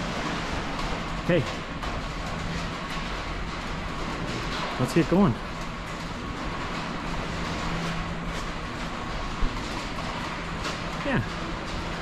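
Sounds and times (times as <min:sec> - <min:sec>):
machine noise and hum: 0:00.0 - 0:12.0.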